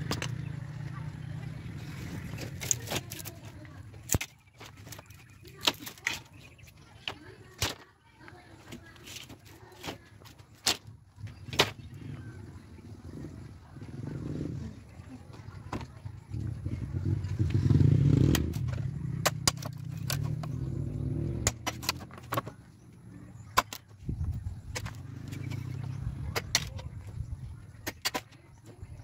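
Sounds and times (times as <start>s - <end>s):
hatchet chopping bamboo: 4.0s - 5.0s, 5.6s - 6.3s, 9.8s - 10.9s, 11.5s - 11.8s, 18.1s - 22.5s, 23.5s - 23.9s, 24.7s - 25.4s, 26.3s - 26.8s, 27.8s - 28.3s.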